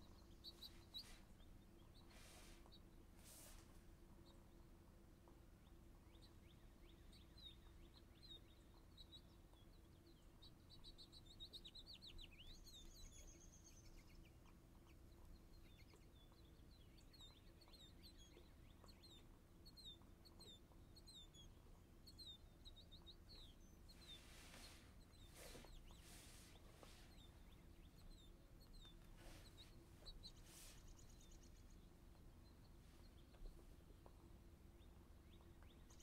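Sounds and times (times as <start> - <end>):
faint bird chirping: 0.0 - 36.0
low steady room hum: 0.0 - 36.0.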